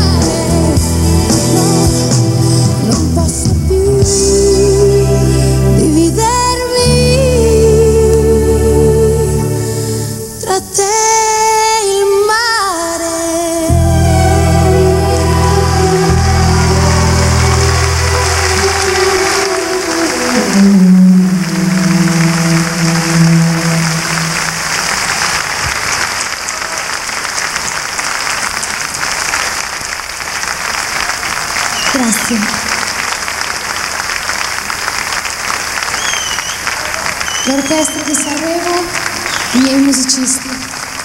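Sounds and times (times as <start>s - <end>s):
orchestra holding final chord: 13.7s - 25.4s
audience applauding: 13.7s - 41.0s.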